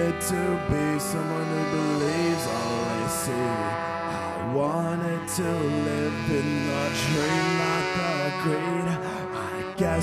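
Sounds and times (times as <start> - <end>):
electric guitar: 0.0 - 10.0
horn section bending notes: 0.0 - 10.0.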